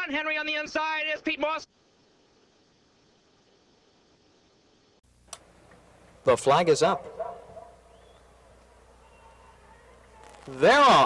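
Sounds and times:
low steady hum and hiss: 0.0 - 11.0.

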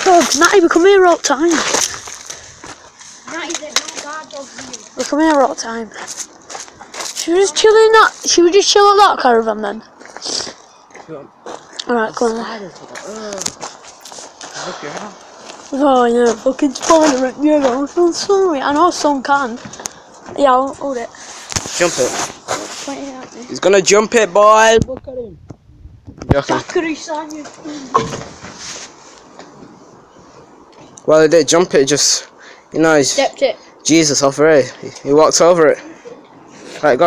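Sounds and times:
boy speaking: 0.0 - 1.8, 3.2 - 6.1, 7.0 - 10.5, 11.8 - 13.6, 14.8 - 21.3, 21.9 - 23.6, 24.9 - 25.4, 26.4 - 28.2, 32.8 - 33.7
scuffing and rustling on railing: 27.4 - 29.7.

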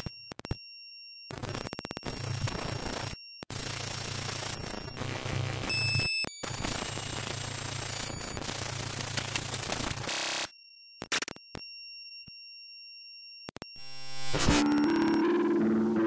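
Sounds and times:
harsh electronic static: 1.3 - 10.5, 11.1 - 11.4, 13.8 - 16.0
thin high electronic tones: 13.8 - 16.0.

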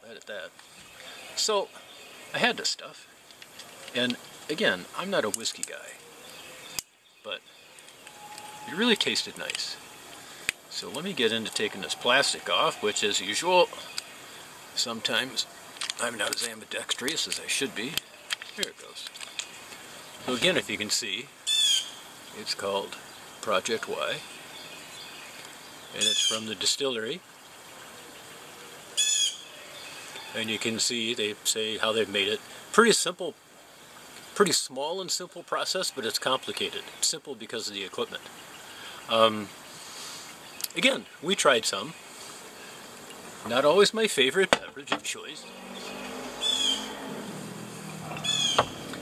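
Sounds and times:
faint outdoor background noise: 0.0 - 49.0
bird high call: 5.9 - 15.6, 21.5 - 22.1, 24.6 - 26.6, 27.9 - 30.6, 45.4 - 47.2, 47.8 - 48.8.

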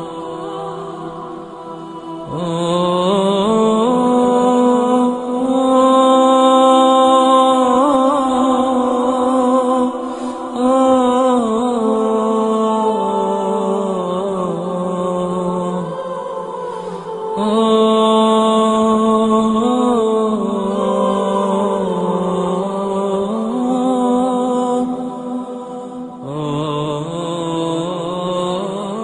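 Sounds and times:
chanted vocal mantra: 0.0 - 29.0.

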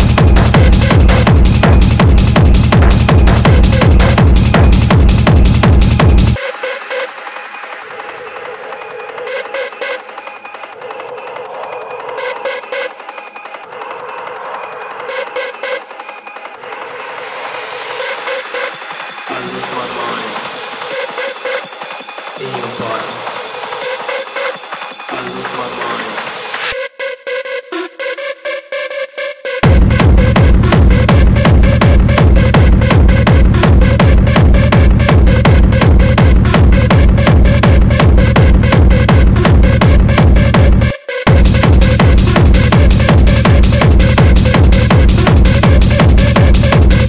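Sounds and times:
heavy kick drum: 0.0 - 6.4, 29.6 - 47.0
noisy high percussion: 0.0 - 6.4, 29.6 - 47.0
synth stabs: 0.0 - 26.8, 29.6 - 47.0.

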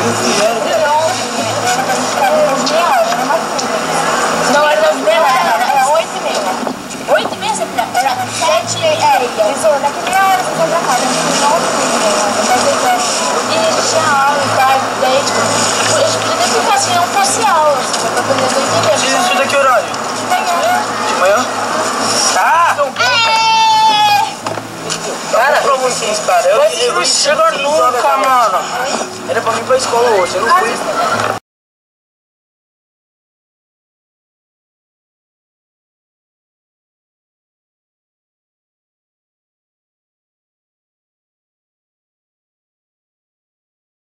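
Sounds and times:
young men talking and calling out: 0.0 - 31.4.

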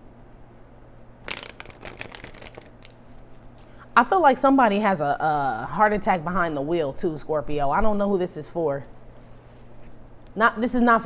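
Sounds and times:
cards flicking and rustling: 1.2 - 3.0.

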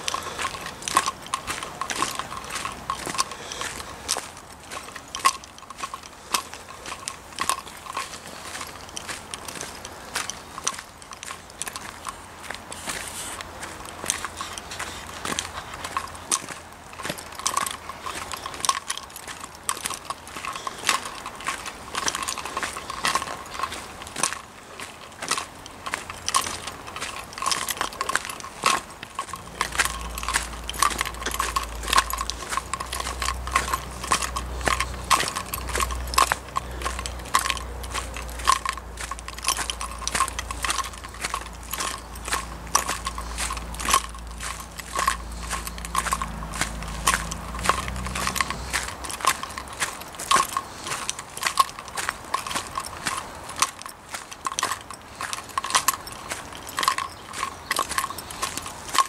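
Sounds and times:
footsteps crunching on leaves: 0.0 - 59.0.

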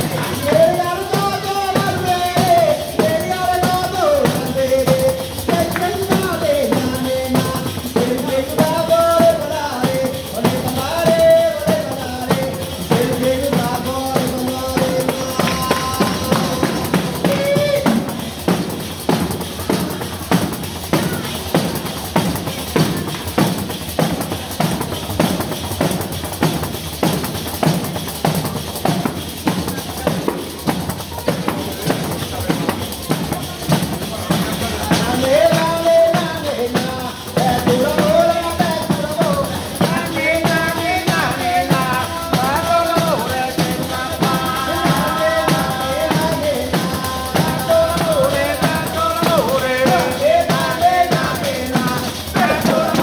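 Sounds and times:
person singing: 0.0 - 21.8, 33.4 - 53.0
frame drums with jingles: 0.0 - 53.0.

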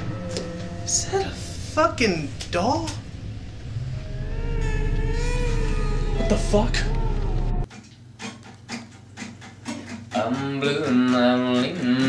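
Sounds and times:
faint wavering tones: 0.0 - 7.7
low rumbling drone: 0.0 - 7.7.

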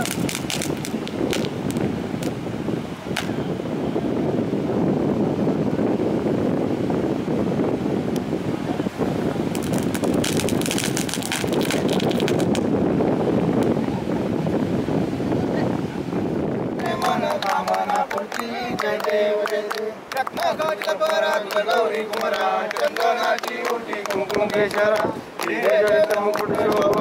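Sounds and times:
firecrackers popping and crackling: 0.0 - 2.4, 3.1 - 3.4, 9.4 - 12.8
surf: 0.0 - 27.0
wind: 0.0 - 27.0.

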